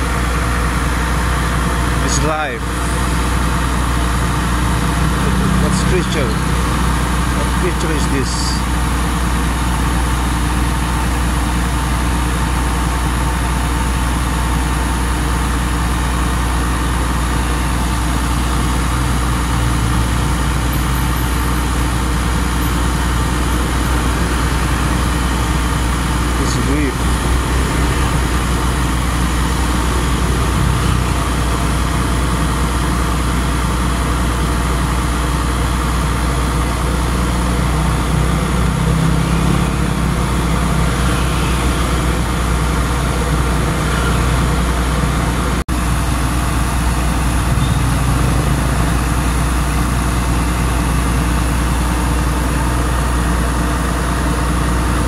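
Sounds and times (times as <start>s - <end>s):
motor running with low rumble: 0.0s - 55.0s.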